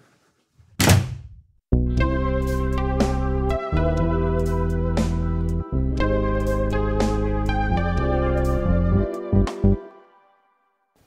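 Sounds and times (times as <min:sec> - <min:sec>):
loud thud: 0:00.8 - 0:01.4
keyboard music with held chord: 0:01.8 - 0:10.8.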